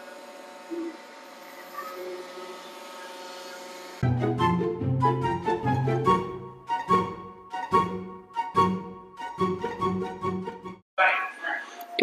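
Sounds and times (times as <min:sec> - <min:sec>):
floor scrubber motors humming: 0:00.0 - 0:04.0.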